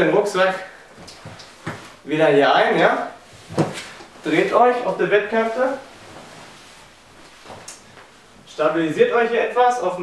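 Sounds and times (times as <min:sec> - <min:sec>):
mattress rustling and creaking: 0:00.9 - 0:02.0, 0:03.2 - 0:08.4.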